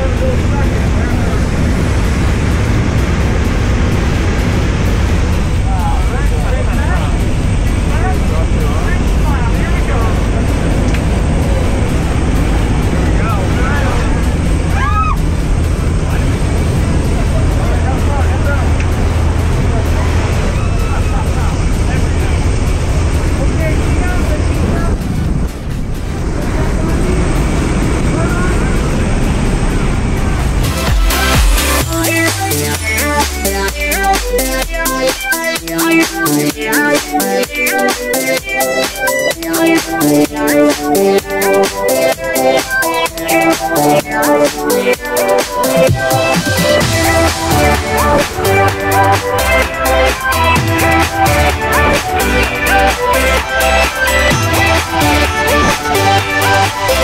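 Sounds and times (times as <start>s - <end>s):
indistinct voices: 0.0s - 57.0s
propeller plane engine roar: 0.0s - 57.0s.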